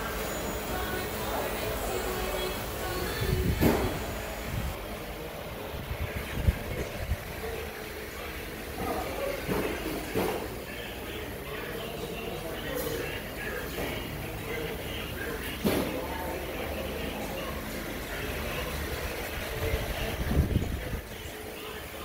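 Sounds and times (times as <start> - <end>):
indistinct voices: 0.0 - 22.0
shop clatter: 0.0 - 22.0.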